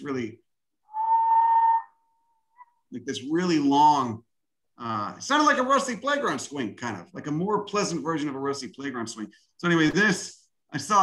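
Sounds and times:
man whistling long note: 0:00.9 - 0:02.8.

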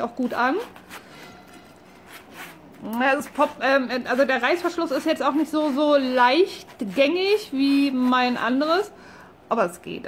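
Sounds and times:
light zipper scrapes: 0:00.3 - 0:07.4.

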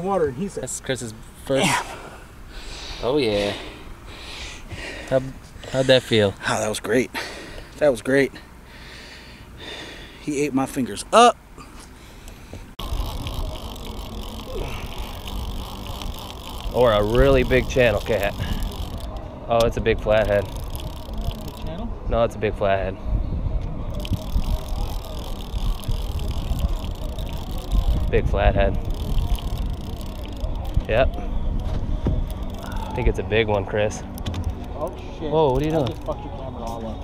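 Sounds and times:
rod handling rumble: 0:12.8 - 0:21.8, 0:23.9 - 0:33.1
fishing reel whirring: 0:12.8 - 0:21.9, 0:23.9 - 0:37.0.

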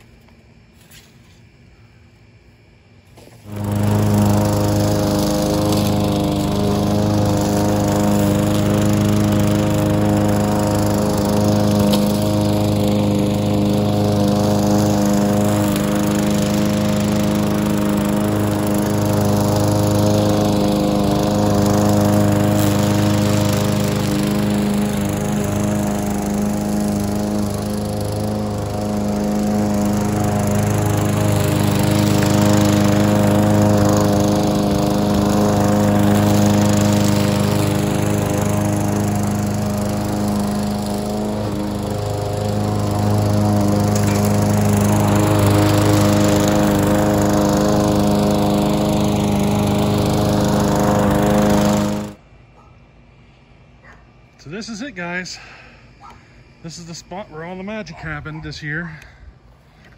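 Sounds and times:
lawn mower running: 0:03.0 - 0:52.3, 0:54.4 - 0:58.3.

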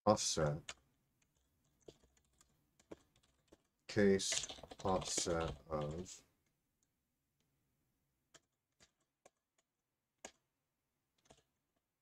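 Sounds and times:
man's voice: 0:03.9 - 0:06.2.

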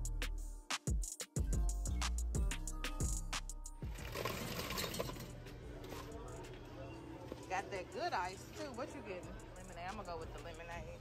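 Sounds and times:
background music with steady beat: 0:00.0 - 0:11.0
ice rattling into paper cup: 0:03.9 - 0:05.3
store noise: 0:03.9 - 0:11.0.

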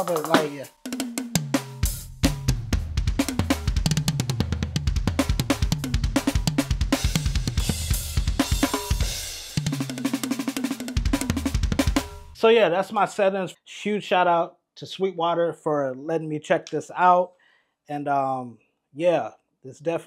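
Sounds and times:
electronic drum kit playing: 0:00.0 - 0:12.4.

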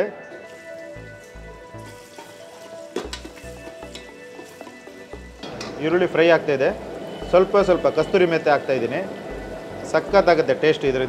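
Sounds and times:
onion sizzling in hot oil: 0:00.4 - 0:10.5.

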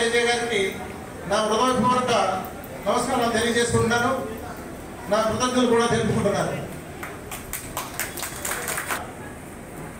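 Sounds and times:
small audience applauding: 0:07.0 - 0:09.0.

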